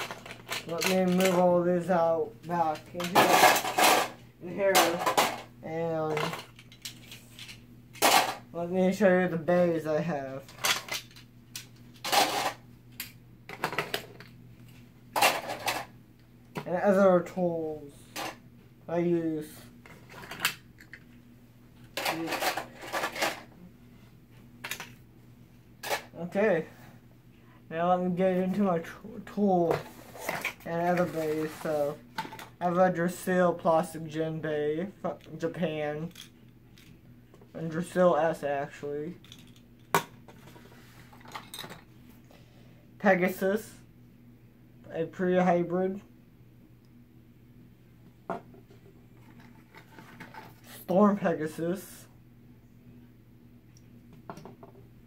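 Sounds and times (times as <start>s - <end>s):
plastic parts clattering: 0.0s - 5.5s, 6.1s - 8.4s, 10.4s - 14.3s, 15.2s - 15.9s, 22.0s - 23.5s, 25.8s - 26.2s, 29.7s - 32.6s, 39.2s - 41.9s, 49.2s - 50.8s.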